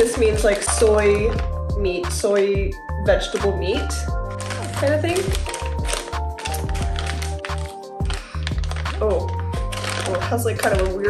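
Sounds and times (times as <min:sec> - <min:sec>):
plastic snack bag crinkling: 0:00.0 - 0:01.4, 0:03.2 - 0:11.0
background music with bass: 0:00.0 - 0:11.0.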